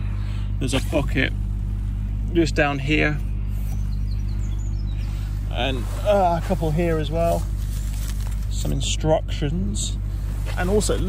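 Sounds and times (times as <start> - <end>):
low background hum: 0.0 - 11.0
faint bird chirps: 3.2 - 6.1.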